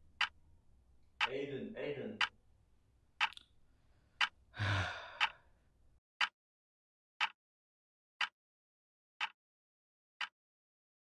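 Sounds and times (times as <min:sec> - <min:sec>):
clock ticking: 0:00.1 - 0:00.4, 0:01.2 - 0:01.5, 0:02.1 - 0:02.4, 0:03.2 - 0:03.4, 0:04.2 - 0:04.4, 0:05.0 - 0:05.4
person sighing: 0:04.6 - 0:05.4.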